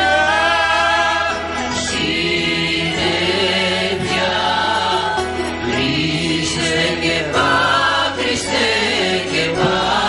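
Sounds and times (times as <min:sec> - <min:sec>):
choir singing sustained notes: 0:00.0 - 0:10.0
plucked strings and keyboard: 0:00.0 - 0:10.0.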